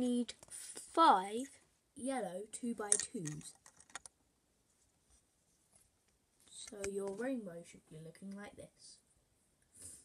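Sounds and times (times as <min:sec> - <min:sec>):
plastic bricks clicking: 0:02.9 - 0:04.1.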